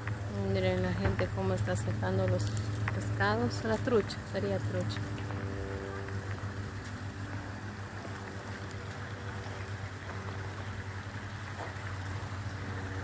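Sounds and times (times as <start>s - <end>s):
constant rushing noise: 0.0s - 13.0s.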